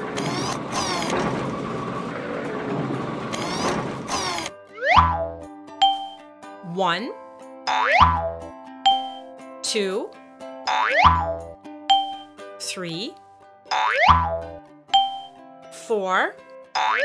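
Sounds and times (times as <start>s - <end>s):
cartoon machine whirring clatter: 0.0s - 4.5s
children's music tune: 4.7s - 17.0s
springy boing effect: 4.8s - 5.4s, 7.7s - 9.2s, 10.7s - 12.2s, 13.7s - 15.3s, 16.8s - 17.0s.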